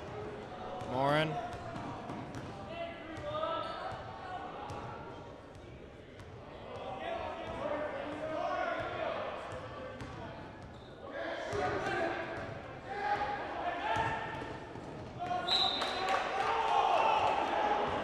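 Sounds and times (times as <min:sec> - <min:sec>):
referee's whistle: 0:15.4 - 0:16.1.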